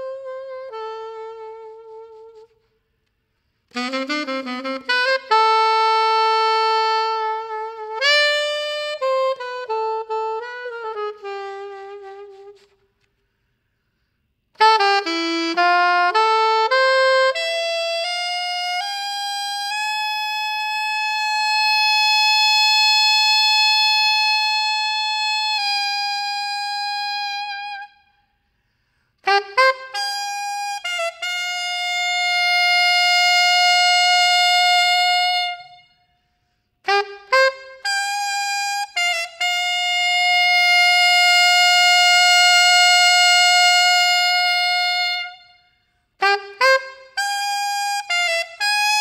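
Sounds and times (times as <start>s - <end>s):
saxophone holding a high note: 29.2s - 36.1s, 36.9s - 49.0s.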